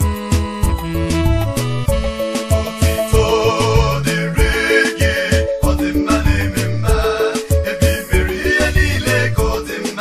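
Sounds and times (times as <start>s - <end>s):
upbeat gospel music: 0.0s - 10.0s.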